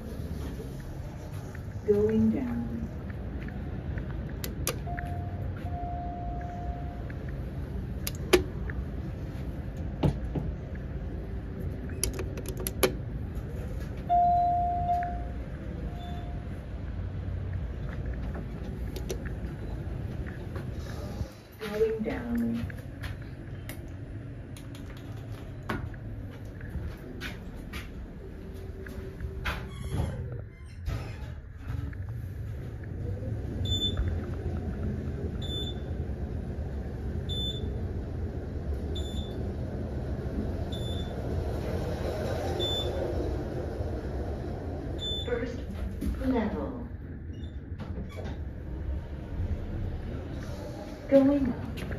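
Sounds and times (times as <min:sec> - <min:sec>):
elevator ride rumble: 0:00.0 - 0:51.9
elevator button clicks: 0:04.4 - 0:05.2
elevator chime tones: 0:04.8 - 0:07.2, 0:14.1 - 0:16.6, 0:42.6 - 0:43.1.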